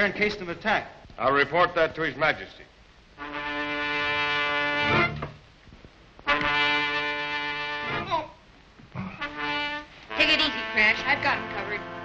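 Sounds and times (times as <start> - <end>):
brass horn long notes: 3.2 - 5.3, 6.2 - 8.2, 9.0 - 12.0.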